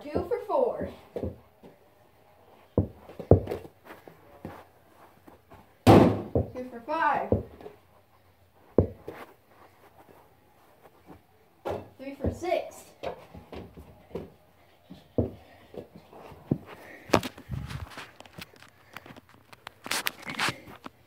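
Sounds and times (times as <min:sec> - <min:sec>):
ball thudding on carpet: 0:02.8 - 0:03.7, 0:08.7 - 0:09.3
ball hitting plastic hoop: 0:05.8 - 0:06.6.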